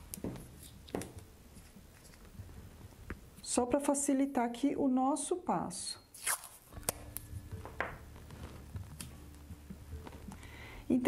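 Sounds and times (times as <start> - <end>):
masking tape tearing: 6.1 - 7.3.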